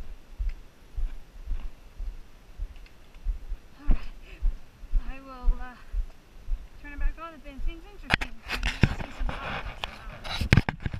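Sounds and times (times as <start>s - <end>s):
footsteps on stony trail: 0.0s - 10.9s
rustling: 8.1s - 10.9s.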